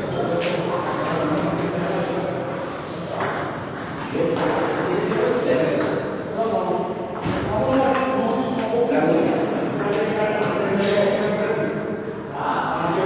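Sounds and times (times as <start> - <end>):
table tennis balls hitting: 0.3 - 6.4, 7.1 - 10.7.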